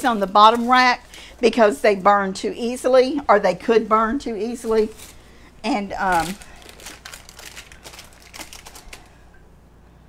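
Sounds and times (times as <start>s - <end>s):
paper crinkling: 0.0s - 2.1s, 4.5s - 9.2s.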